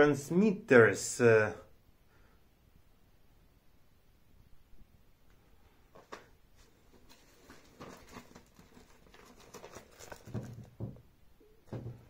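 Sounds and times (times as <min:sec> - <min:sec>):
paper in plastic sleeve rustling: 0:06.6 - 0:10.7
dull thumps: 0:09.9 - 0:12.0.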